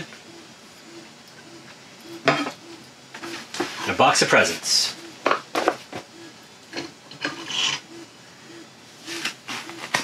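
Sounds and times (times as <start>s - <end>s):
plastic parts rubbing and scraping: 3.2s - 8.1s, 9.0s - 10.0s.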